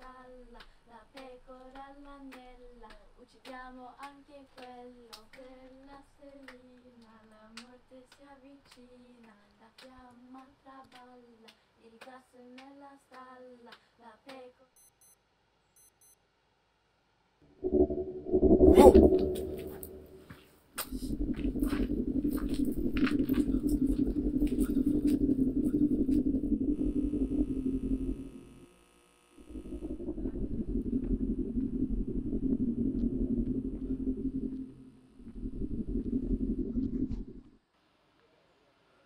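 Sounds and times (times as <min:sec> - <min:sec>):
low rumbling drone: 0:17.5 - 0:28.7, 0:29.4 - 0:37.6.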